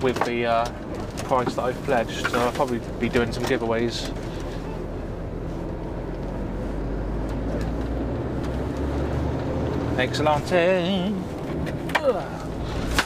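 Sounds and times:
lorry diesel engine droning: 0.0s - 13.0s.

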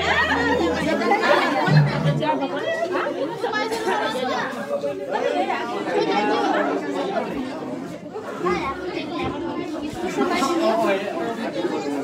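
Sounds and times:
overlapping chatter of a group: 0.0s - 12.0s.

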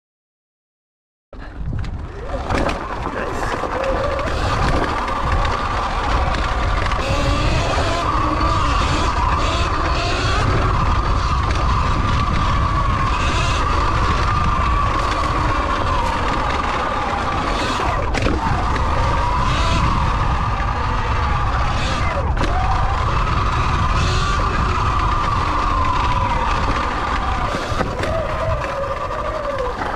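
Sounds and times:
tyres on dirt trail: 1.4s - 29.9s
wind buffeting microphone: 1.4s - 29.9s
electric motor whining: 2.1s - 29.9s.

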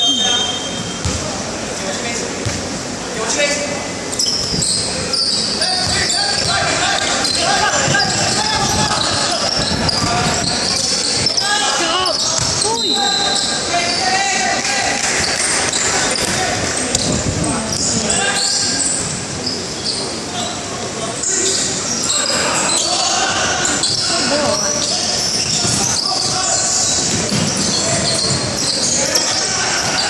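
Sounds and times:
sneakers squeaking: 0.0s - 1.4s, 2.4s - 2.9s, 4.0s - 30.0s
ball bouncing on wooden court: 1.0s - 1.3s, 2.4s - 2.7s, 5.8s - 6.6s, 12.3s - 12.7s, 23.8s - 28.9s
shouts and chatter: 4.0s - 30.0s.

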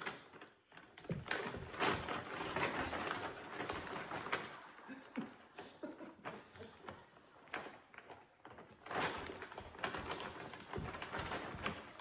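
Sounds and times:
gift bag rustling and crinkling: 0.0s - 4.9s, 6.6s - 12.0s.

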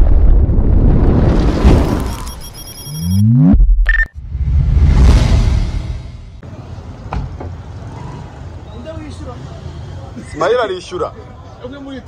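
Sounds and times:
traffic rumble: 6.1s - 12.0s.

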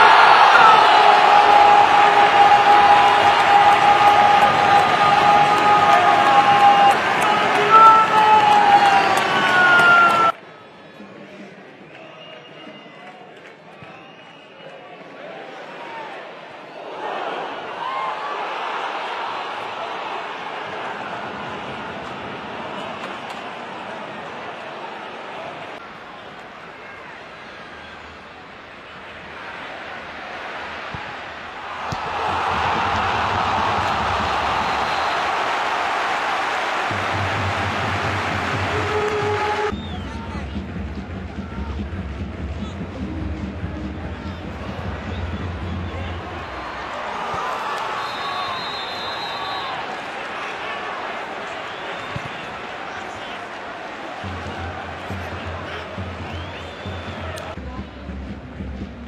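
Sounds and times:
stadium crowd cheering: 0.0s - 59.0s
crowd murmur: 36.9s - 47.2s, 49.8s - 59.0s.

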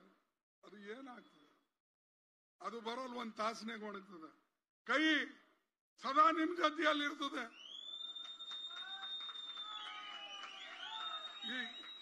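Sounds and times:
shrill whistling from audience: 7.5s - 12.0s.

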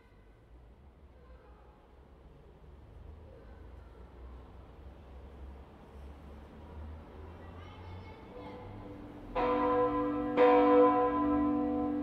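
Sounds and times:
church bell clapper strikes: 9.3s - 12.0s.

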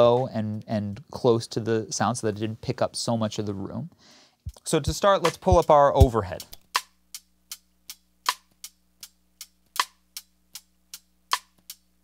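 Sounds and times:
soft hi-hat ticks: 0.2s - 1.2s, 4.4s - 12.0s
sharp snare hit: 5.2s - 6.2s.

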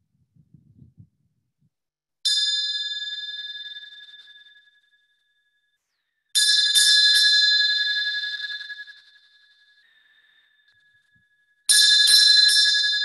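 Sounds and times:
meditation bell ringing: 2.2s - 5.8s, 6.4s - 13.0s.

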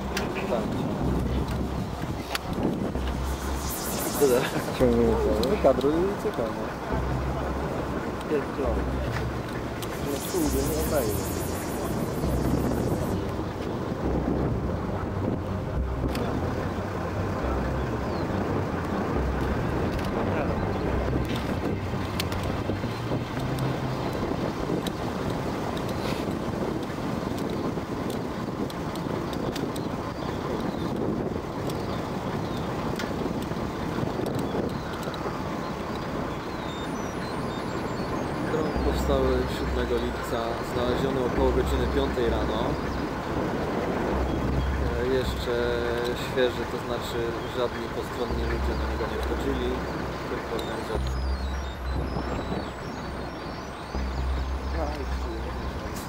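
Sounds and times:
wind noise on microphone: 0.0s - 56.0s.

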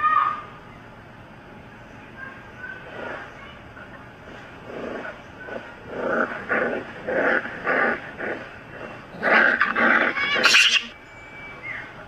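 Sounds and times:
pet animal growling: 4.3s - 10.9s.

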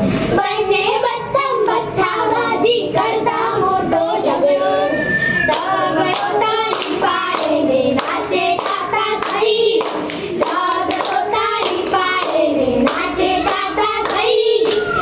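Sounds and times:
girls singing: 0.3s - 15.0s
hand claps: 5.5s - 15.0s.

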